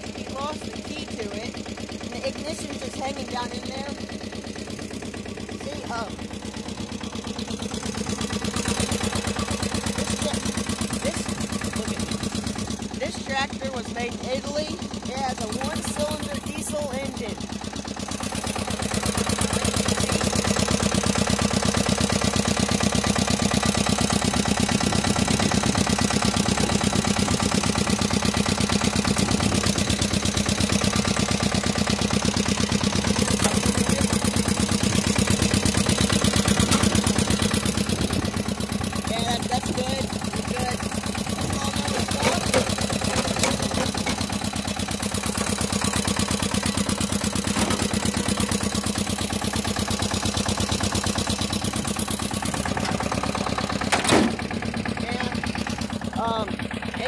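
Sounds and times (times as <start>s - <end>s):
tractor diesel engine running: 0.0s - 57.0s.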